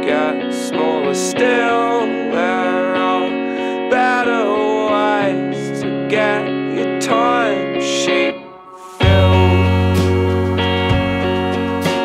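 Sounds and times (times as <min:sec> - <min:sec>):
rock band music: 0:05.2 - 0:12.0
gliding melodic line: 0:07.4 - 0:11.9.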